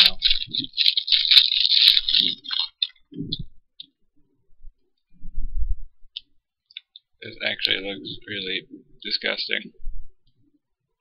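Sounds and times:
plastic packaging crinkling: 0.0 - 3.5.

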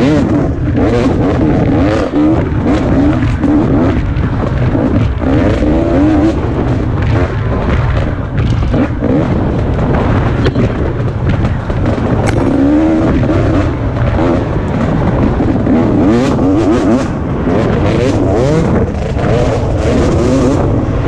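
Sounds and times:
dirt bike engine revving: 0.0 - 21.0
wind rushing over microphone: 0.0 - 21.0.

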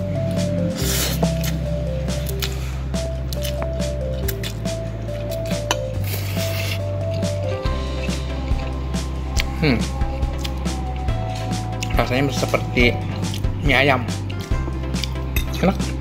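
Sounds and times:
background music with bass: 0.0 - 16.0.

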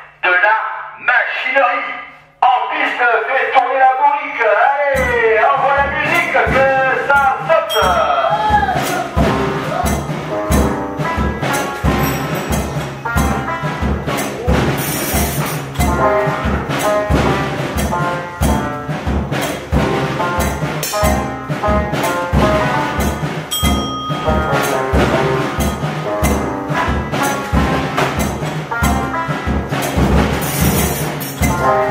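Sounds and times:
mechanical music machine playing: 4.9 - 18.9, 19.7 - 29.2.

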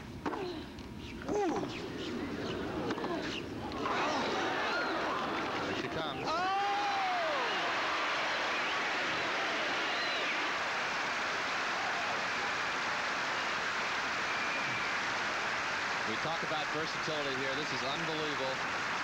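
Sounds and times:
stadium crowd murmur: 1.4 - 19.0.

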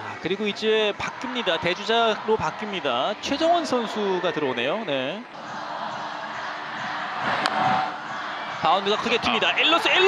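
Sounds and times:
ballpark crowd noise: 0.0 - 10.0.

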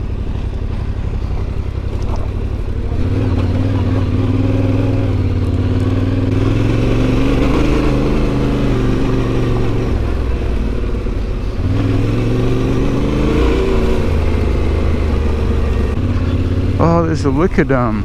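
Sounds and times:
motorcycle engine revving: 0.0 - 18.0.

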